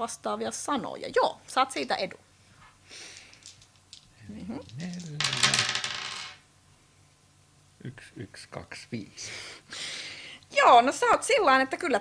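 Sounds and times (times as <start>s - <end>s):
dice clattering on a table: 3.2s - 6.4s.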